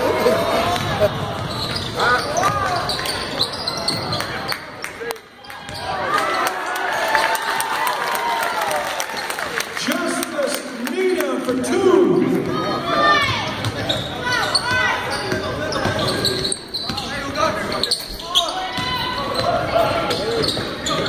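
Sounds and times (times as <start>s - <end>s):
echoing voices: 9.7s - 21.0s.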